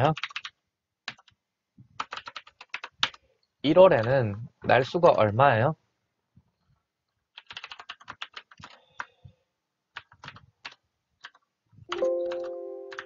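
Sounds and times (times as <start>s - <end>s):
computer keyboard typing: 0.1s - 0.5s, 1.1s - 1.4s, 2.0s - 3.2s, 7.3s - 9.1s, 9.9s - 13.0s.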